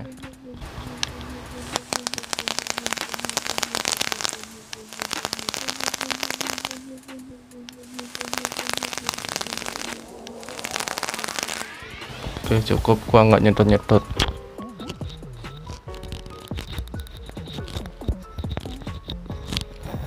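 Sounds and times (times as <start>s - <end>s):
vape coil crackling and sizzling: 0.0s - 20.0s.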